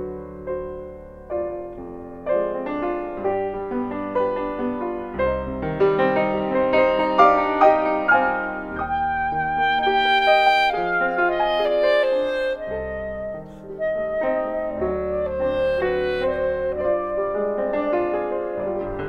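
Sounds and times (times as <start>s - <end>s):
clarinet slow melody: 0.0s - 19.0s.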